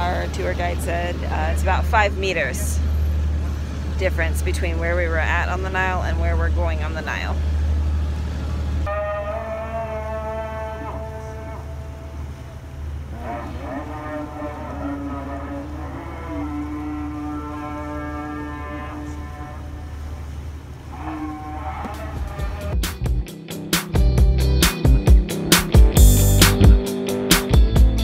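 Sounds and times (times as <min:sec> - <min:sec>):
boat engine humming: 0:00.0 - 0:28.0
distant voice chanting: 0:08.9 - 0:22.7.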